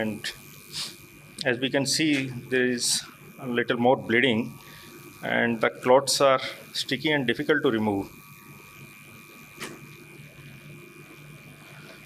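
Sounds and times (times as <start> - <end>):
sound system electrical hum: 0.0 - 12.0.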